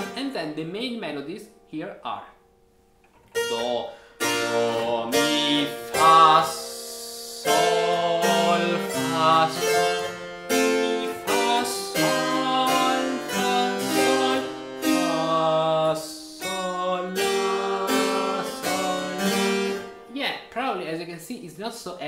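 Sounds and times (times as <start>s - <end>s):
harpsichord chords: 0.0s - 21.4s.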